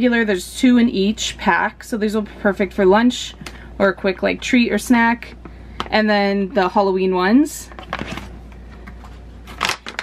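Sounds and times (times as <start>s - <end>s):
low steady hum: 0.0s - 10.0s
plastic packaging crinkling: 7.7s - 10.0s.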